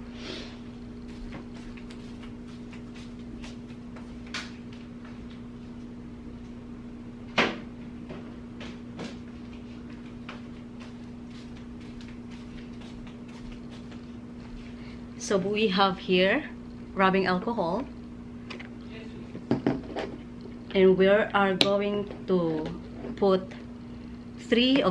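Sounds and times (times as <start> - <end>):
steady low hum: 0.0 - 24.9.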